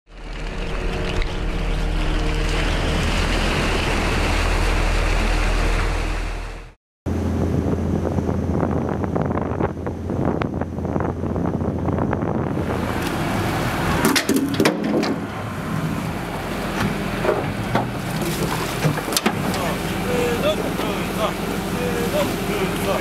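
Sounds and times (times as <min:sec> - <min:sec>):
boat engine droning: 0:00.1 - 0:23.0
crew voices: 0:19.4 - 0:23.0.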